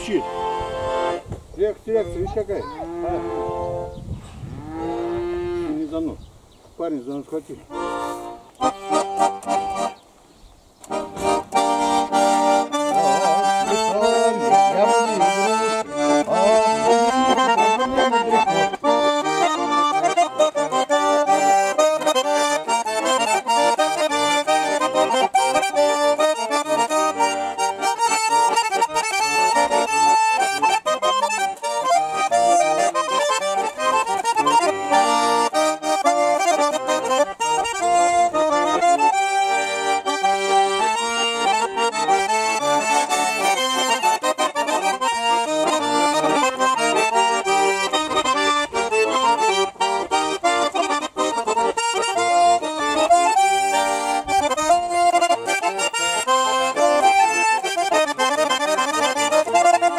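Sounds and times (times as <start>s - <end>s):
button accordion playing folk tunes: 0.0s - 6.2s, 6.8s - 10.2s, 10.8s - 59.9s.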